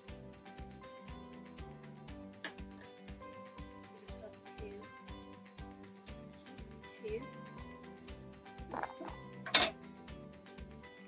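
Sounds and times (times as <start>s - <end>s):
background music with steady beat: 0.0s - 11.0s
teaspoon clinking on glass: 9.4s - 9.8s.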